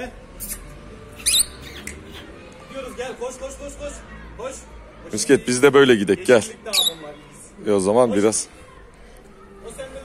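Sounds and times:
shrill wavering bird chirp: 0.4 - 2.3, 6.7 - 7.3.

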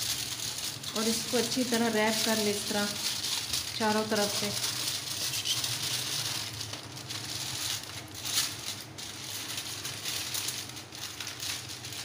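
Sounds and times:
foil crinkling and rustling: 0.0 - 12.0.

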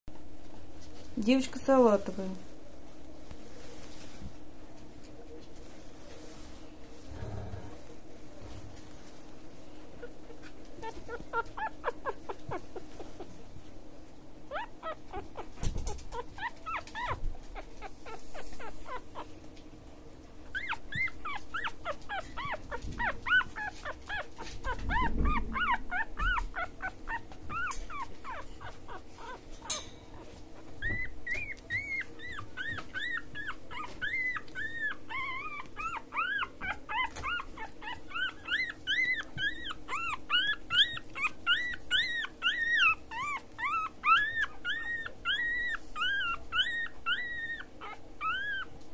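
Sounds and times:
puppy squeaking and whimpering: 9.9 - 13.4, 14.4 - 19.5, 20.4 - 48.9.

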